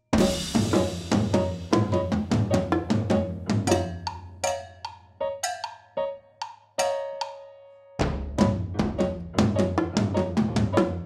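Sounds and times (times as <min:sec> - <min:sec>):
cowbell strikes: 0:03.7 - 0:05.9.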